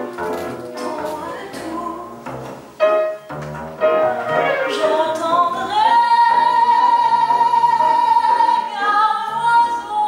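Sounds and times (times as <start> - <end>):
double bass: 0.0 - 10.0
piano: 0.0 - 10.0
woman singing a long high note: 4.7 - 10.0.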